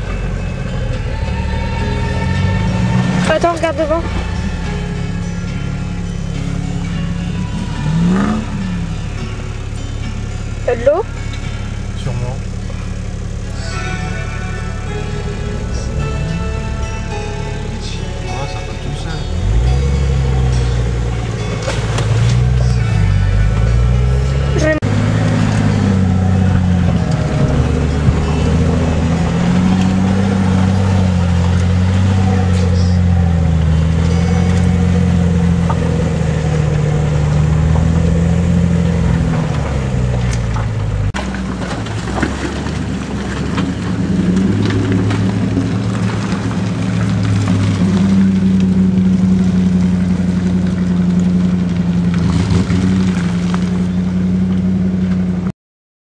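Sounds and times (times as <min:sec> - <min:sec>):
off-road engine running under load: 0:00.0 - 0:55.5.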